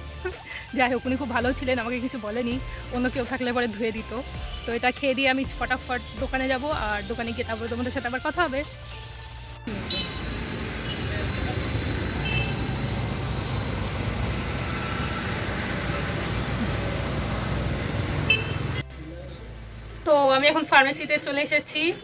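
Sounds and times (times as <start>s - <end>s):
road traffic rumble: 6.0s - 20.1s.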